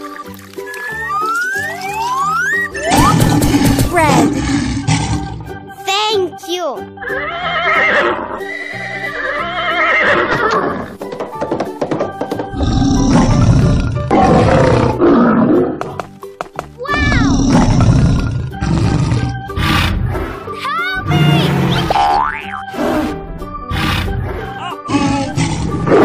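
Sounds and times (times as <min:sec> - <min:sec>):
cartoon background music: 0:00.0 - 0:26.0.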